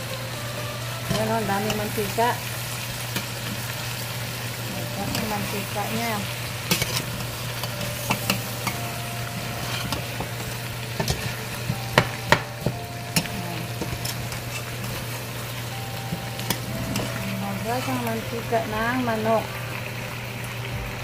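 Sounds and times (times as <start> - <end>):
chicken sizzling in a pot: 0.0 - 21.0.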